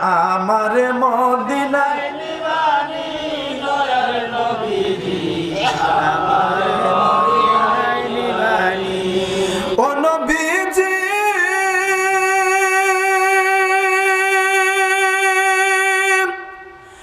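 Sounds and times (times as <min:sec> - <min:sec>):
man chanting: 0:09.7 - 0:16.8.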